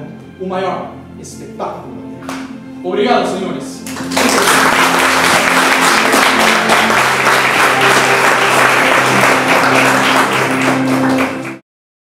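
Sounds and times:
background music with low notes: 0:00.0 - 0:11.6
applause: 0:03.8 - 0:11.6.

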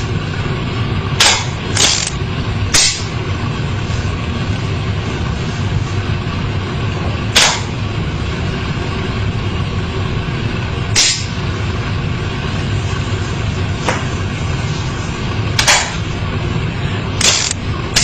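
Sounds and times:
low rumbling background: 0:00.0 - 0:18.0.

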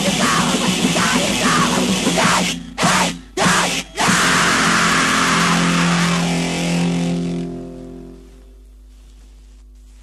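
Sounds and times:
distorted guitar chord: 0:00.0 - 0:08.7.

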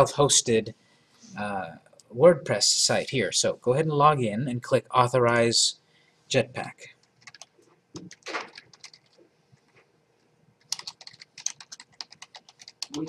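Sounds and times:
computer keyboard typing: 0:07.0 - 0:09.2, 0:10.6 - 0:13.0.

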